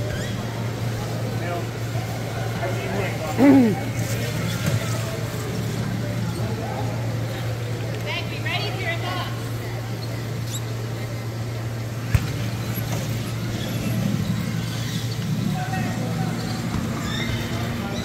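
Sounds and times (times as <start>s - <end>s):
indistinct voices: 0.0s - 12.0s
squeaks on hardwood floor: 12.5s - 18.0s.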